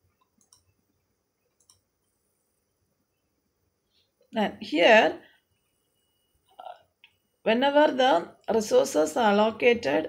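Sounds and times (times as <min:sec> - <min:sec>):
woman lecturing: 0:04.4 - 0:05.3, 0:07.5 - 0:10.0.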